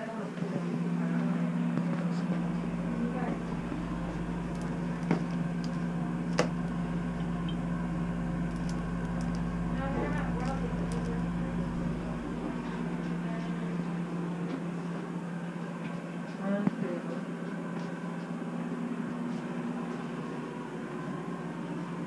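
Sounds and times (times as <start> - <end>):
exhaust fan humming: 0.0 - 22.0.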